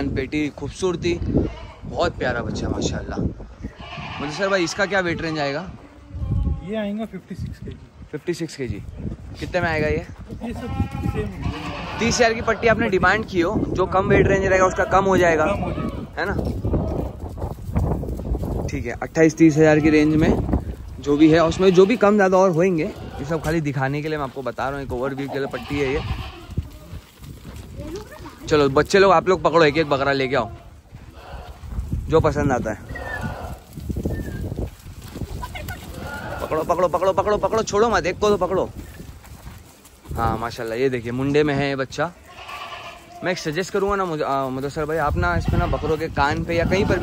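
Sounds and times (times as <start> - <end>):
goat bleating: 1.3 - 1.9, 3.7 - 6.7, 10.4 - 13.3, 14.1 - 17.2, 19.4 - 20.4, 21.0 - 23.7, 25.0 - 27.0, 29.3 - 31.6, 32.8 - 33.7, 35.4 - 37.4, 42.2 - 43.9, 45.1 - 47.0.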